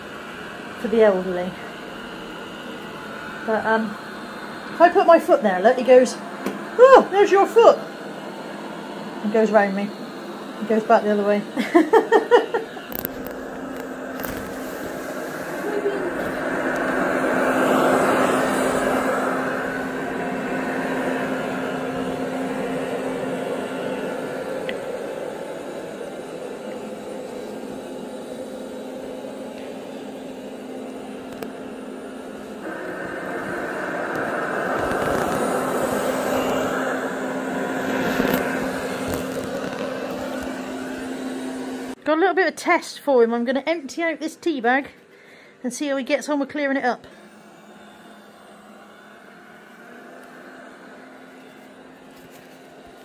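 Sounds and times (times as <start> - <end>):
robot vacuum running on carpet: 0.0 - 42.0, 45.8 - 53.0.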